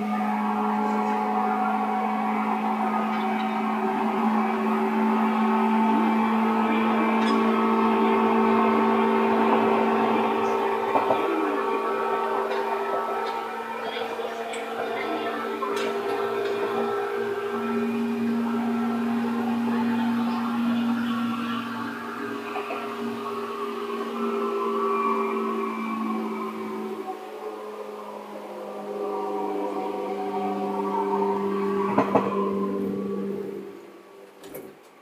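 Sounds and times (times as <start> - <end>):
electric train humming: 0.0 - 35.0.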